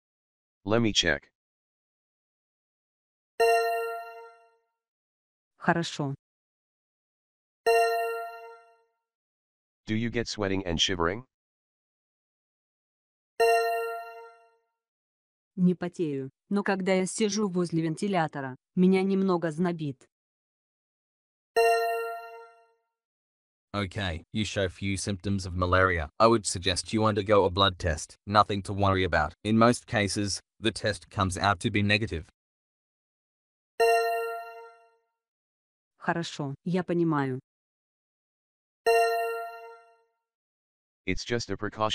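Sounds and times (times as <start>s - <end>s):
person speaking: 0.7s - 1.2s, 9.9s - 11.2s, 23.8s - 32.3s, 41.1s - 41.9s
chime ringing: 3.4s - 4.4s, 7.7s - 8.6s, 13.4s - 14.3s, 21.6s - 22.5s, 33.8s - 34.7s, 38.9s - 39.8s.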